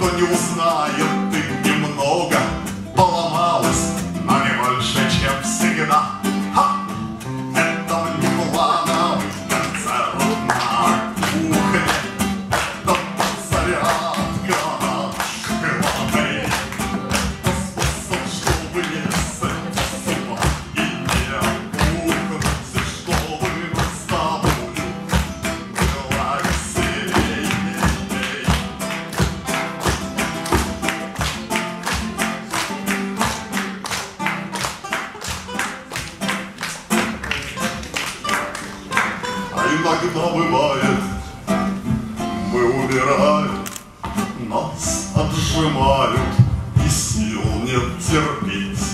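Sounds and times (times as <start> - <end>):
man singing: 0.0 - 34.0, 37.2 - 48.9
classical guitar strummed fast: 0.0 - 48.9.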